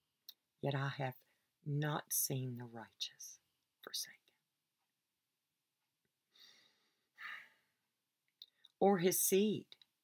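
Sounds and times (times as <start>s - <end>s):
soft breaths: 6.2s - 7.9s.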